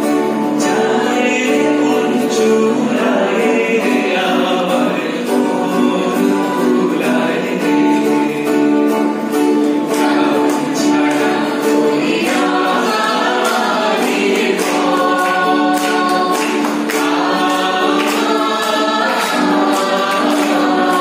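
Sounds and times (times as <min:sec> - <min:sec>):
acoustic guitars strumming: 0:00.0 - 0:21.0
men and women singing in chorus: 0:00.4 - 0:21.0.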